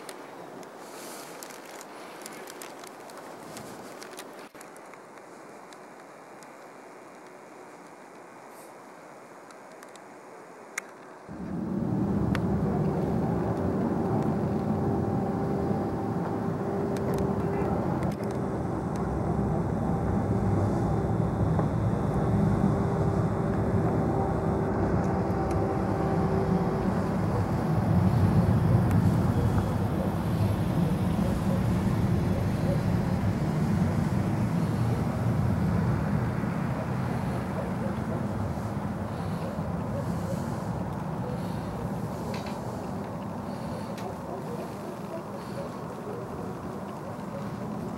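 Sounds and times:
city traffic rumble: 0:10.8 - 0:47.9
steady hum: 0:11.2 - 0:47.9
wind buffeting microphone: 0:11.3 - 0:47.9.

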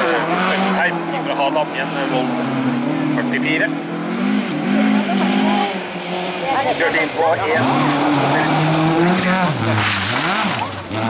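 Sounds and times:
rally car engine revving: 0:00.0 - 0:11.0
tyres sliding on gravel: 0:06.2 - 0:11.0.

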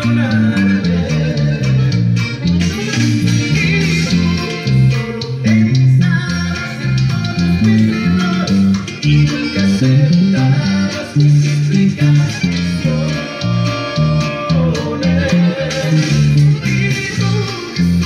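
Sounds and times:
electric bass line: 0:00.0 - 0:18.0.

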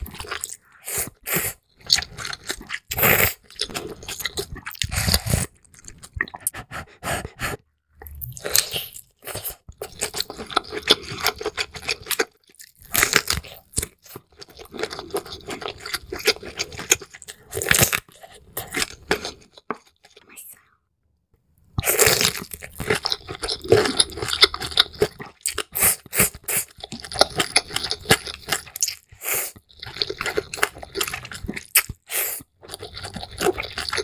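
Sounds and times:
chewing and crunching prawn: 0:00.0 - 0:06.8, 0:08.0 - 0:20.4, 0:21.8 - 0:34.0.

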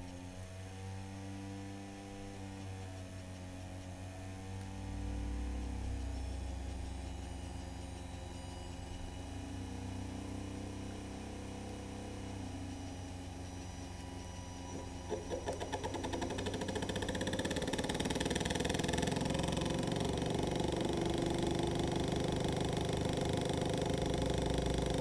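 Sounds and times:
small motors humming and whining: 0:00.0 - 0:25.0.

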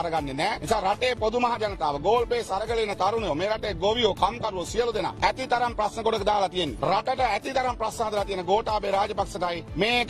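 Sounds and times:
man speaking forcefully: 0:00.0 - 0:10.0.

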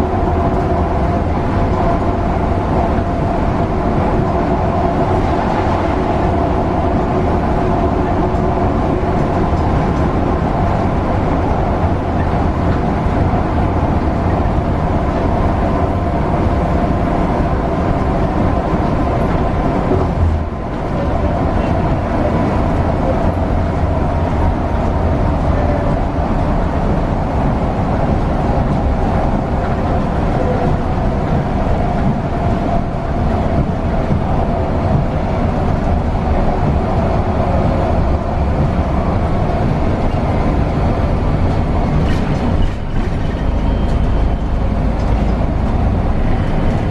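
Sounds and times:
bus engine and tyres droning: 0:00.0 - 0:46.9.

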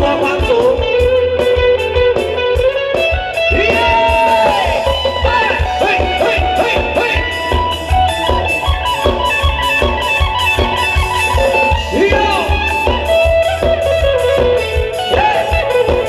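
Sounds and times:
live band dance music: 0:00.0 - 0:16.0.

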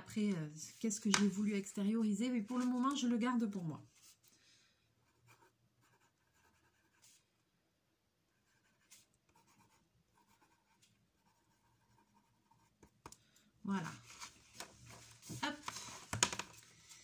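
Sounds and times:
pencil scratching on paper: 0:05.0 - 0:07.2, 0:08.3 - 0:13.2.

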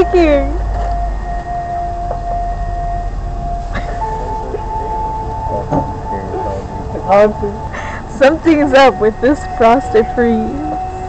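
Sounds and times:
low rumble: 0:00.0 - 0:10.6
steady held tone: 0:00.0 - 0:11.0.

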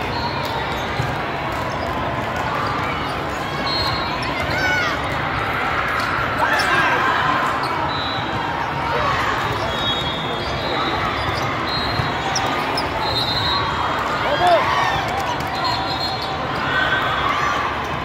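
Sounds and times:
sneaker squeaks on court floor: 0:00.0 - 0:02.0, 0:06.4 - 0:06.9, 0:07.6 - 0:13.7.

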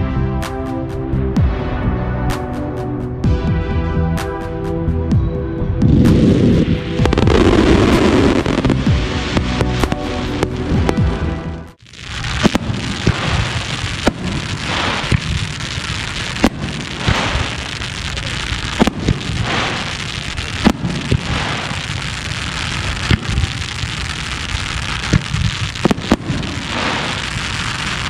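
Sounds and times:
firework mortar launches: 0:06.0 - 0:28.0
continuous hiss: 0:11.8 - 0:28.0.

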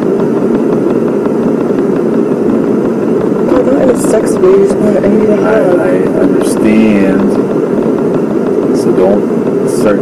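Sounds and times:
loud rumbling background noise: 0:00.0 - 0:10.0
man and woman talking: 0:03.5 - 0:07.4.

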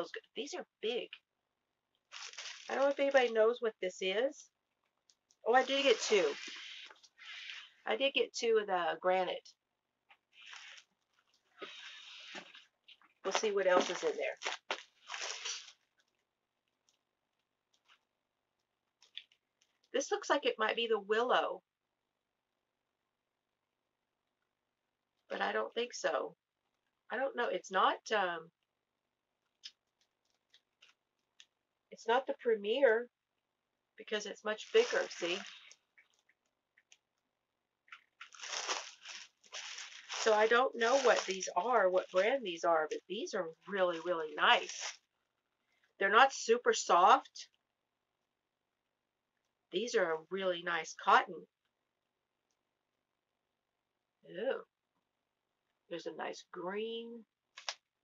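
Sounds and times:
yarn crinkling handling noise: 0:02.0 - 0:03.4, 0:04.7 - 0:07.8, 0:10.1 - 0:19.9, 0:29.5 - 0:31.6, 0:34.5 - 0:37.2, 0:37.8 - 0:45.1, 0:57.5 - 0:57.9
faint packaging rustling: 0:02.1 - 0:03.4, 0:04.8 - 0:07.8, 0:10.2 - 0:18.1, 0:34.5 - 0:37.1, 0:37.9 - 0:43.0, 0:43.7 - 0:45.1.

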